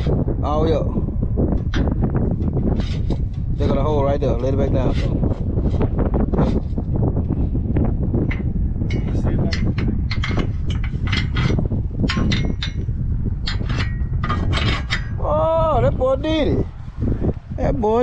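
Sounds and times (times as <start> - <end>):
steady low rumble: 0.0 - 18.0
metal clinking and knocking: 8.2 - 15.2.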